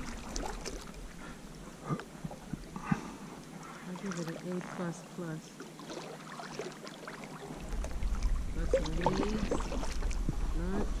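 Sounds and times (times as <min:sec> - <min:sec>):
wind rumble on microphone: 0:00.0 - 0:03.0, 0:07.4 - 0:11.0
kayak paddle splashing water: 0:00.0 - 0:11.0.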